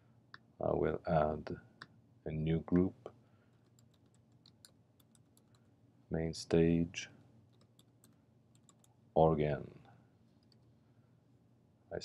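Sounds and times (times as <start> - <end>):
computer keyboard keystrokes: 3.6 - 5.6, 7.6 - 8.9.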